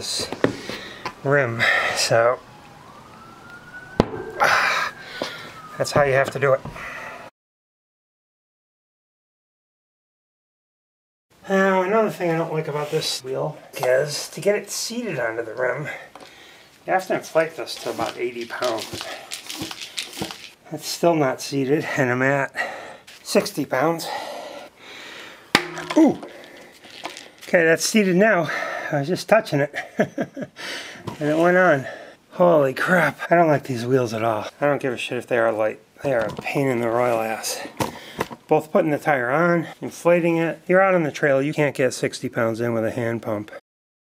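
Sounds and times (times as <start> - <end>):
faint siren wailing: 0.8 - 7.3, 17.0 - 19.4.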